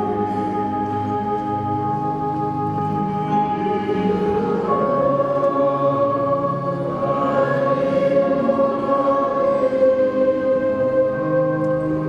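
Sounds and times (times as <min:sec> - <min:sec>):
choir singing long held chords: 0:00.0 - 0:12.0.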